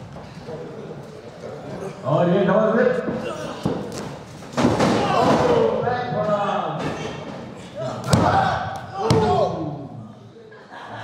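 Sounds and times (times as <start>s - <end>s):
person shouting: 7.8s - 9.8s.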